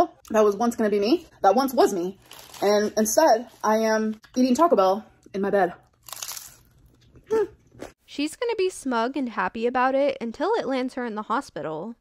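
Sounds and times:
crunch of hard taco shell: 0:06.0 - 0:07.0.

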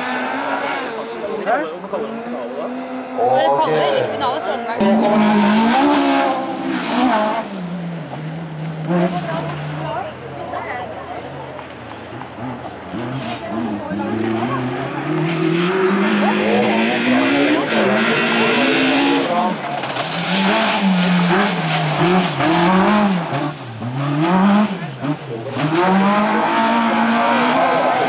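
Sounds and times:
car engine under hard throttle: 0:00.0 - 0:28.0.

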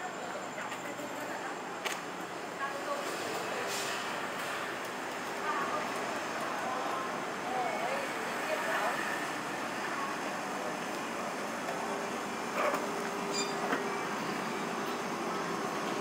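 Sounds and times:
distant traffic: 0:02.5 - 0:16.0.

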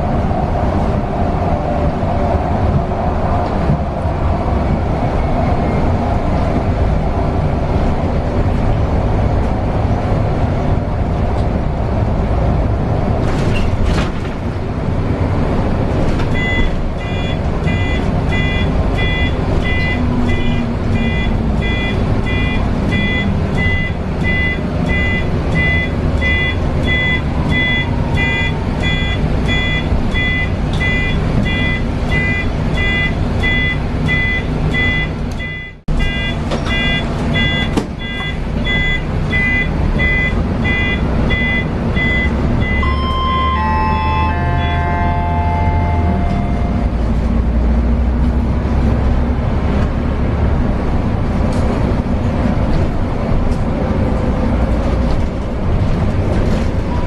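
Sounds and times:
bus engine driving: 0:00.0 - 0:57.0
repeating electronic beep: 0:16.4 - 0:46.8
falling electronic tones: 0:35.5 - 0:46.9.

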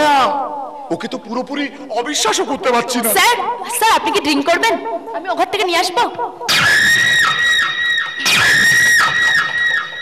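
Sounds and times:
shrill high-pitched scream: 0:06.5 - 0:10.0.

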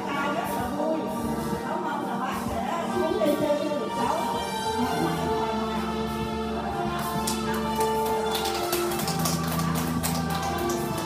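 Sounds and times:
karaoke backing track: 0:00.0 - 0:11.0
people clapping along: 0:06.8 - 0:11.0.

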